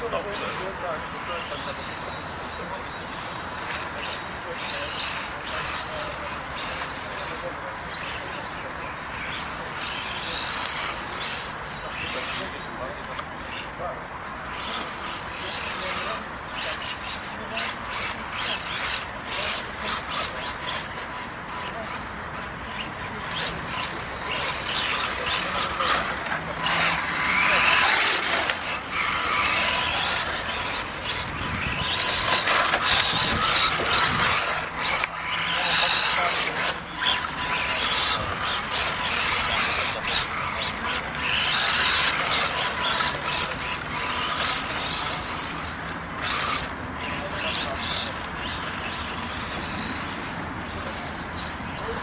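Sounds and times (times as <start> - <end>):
rc car motor whining: 0.0 - 52.0
tyres on dirt track: 0.0 - 52.0.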